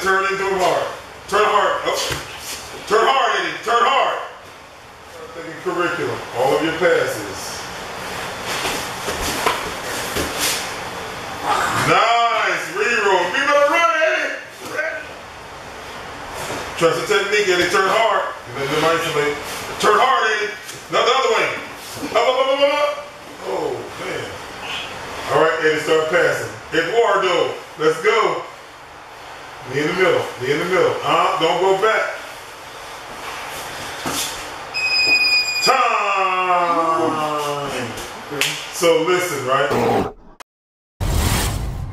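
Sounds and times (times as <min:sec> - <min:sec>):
grapplers scuffling on mats: 0:08.4 - 0:10.7
high electronic timer beep: 0:34.8 - 0:35.7.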